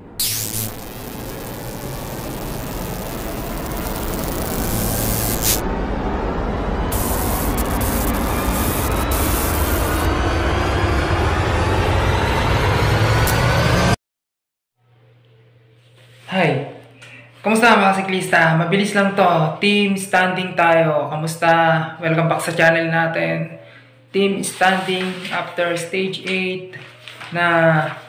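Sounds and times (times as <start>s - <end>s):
rising intro music: 0.0s - 14.0s.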